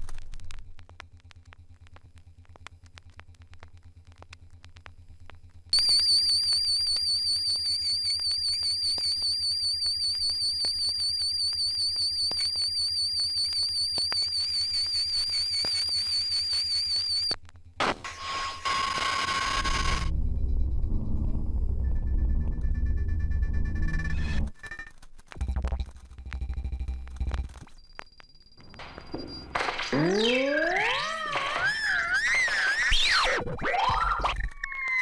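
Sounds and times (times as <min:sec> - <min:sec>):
low pulsing hum: 0:19.4 - 0:24.5
loud low pulsing bass: 0:20.1 - 0:24.5
high warbling synth tone: 0:29.7 - 0:33.9.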